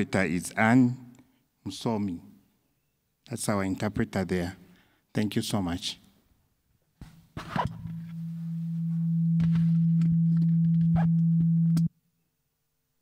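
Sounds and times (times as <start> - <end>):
sound system hum: 7.0 - 11.9.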